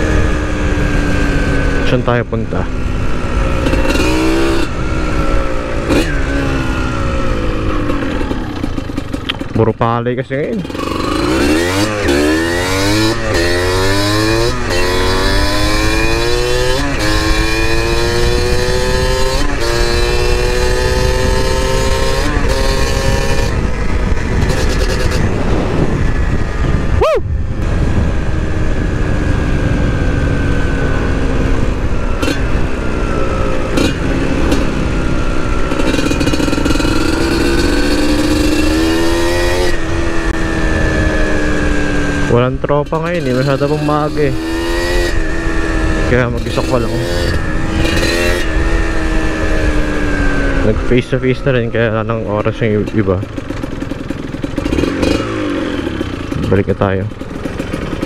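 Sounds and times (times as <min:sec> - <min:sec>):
motorcycle engine shifting gears: 0:00.0 - 0:58.0.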